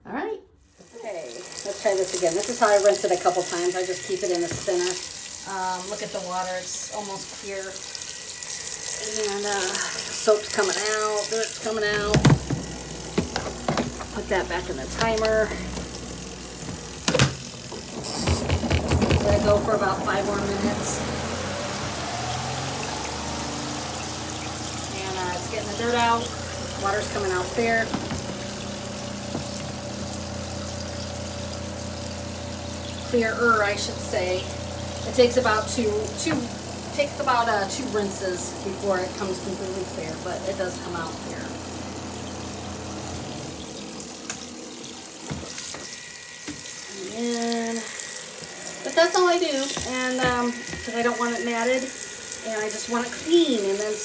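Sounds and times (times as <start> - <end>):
water pouring into sink: 0.8 - 54.0
washing machine rhythmic thumping: 1.4 - 54.0.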